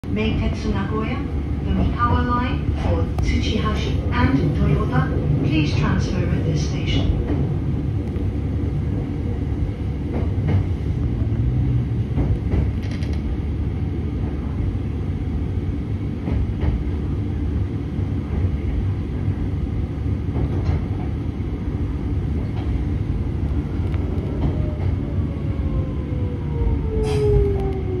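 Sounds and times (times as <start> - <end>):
train low rumble: 0.0 - 28.0.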